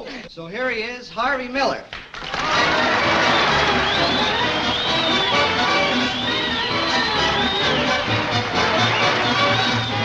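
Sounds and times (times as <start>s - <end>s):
big band with brass playing: 2.5s - 10.0s.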